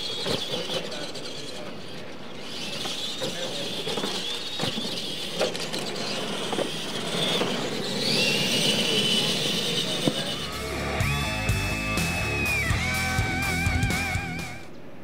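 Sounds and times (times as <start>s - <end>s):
electric motors whining: 0.0s - 14.7s
rock music: 10.5s - 14.7s.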